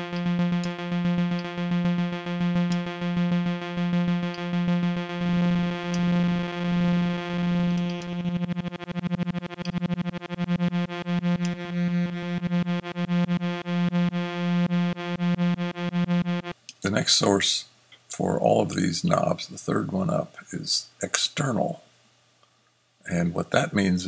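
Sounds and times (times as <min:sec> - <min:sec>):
pulsing low synth note: 0:00.0 - 0:16.6.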